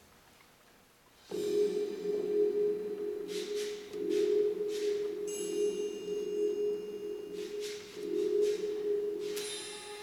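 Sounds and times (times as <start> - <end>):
high ringing tones: 1.3 - 10.0.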